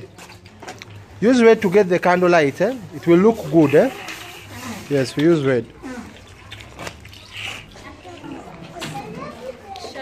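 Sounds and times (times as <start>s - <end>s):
children chattering faintly: 1.3s - 10.0s.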